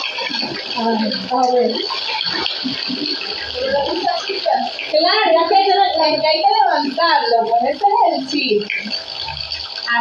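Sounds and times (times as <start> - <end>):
shallow water splashing: 0.0 - 10.0.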